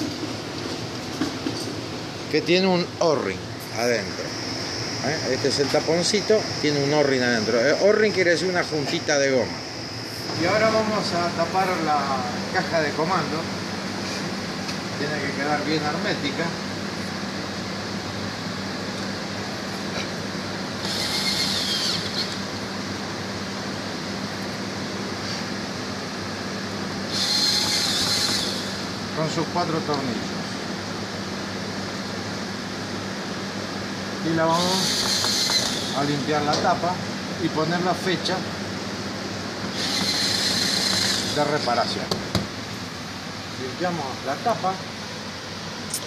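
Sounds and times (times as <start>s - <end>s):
condensing unit humming: 0.0s - 46.0s
cordless drill driving screws: 20.8s - 22.4s, 27.1s - 28.9s, 34.6s - 36.0s, 39.7s - 41.4s.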